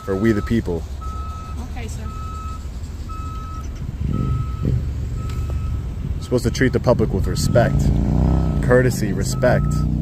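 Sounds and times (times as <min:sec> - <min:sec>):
low engine rumble: 0:00.0 - 0:10.0
vehicle reversing alarm beeping: 0:00.0 - 0:10.0.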